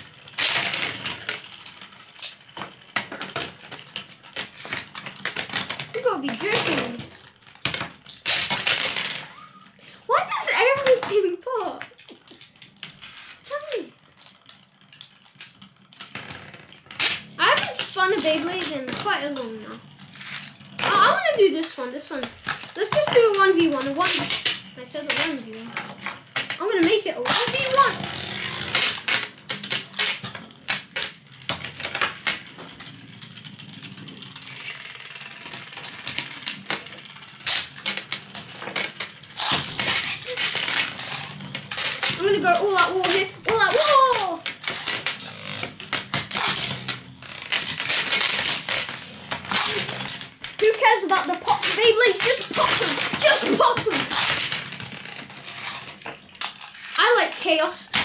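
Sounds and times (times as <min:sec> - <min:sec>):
spinning tops clattering: 0:00.0 - 0:58.0
spinning tops whirring: 0:00.0 - 0:58.0.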